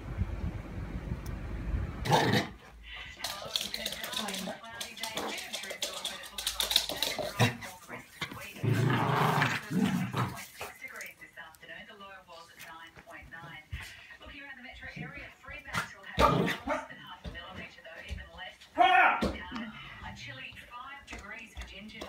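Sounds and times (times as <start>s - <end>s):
television voices: 2.0s - 22.0s.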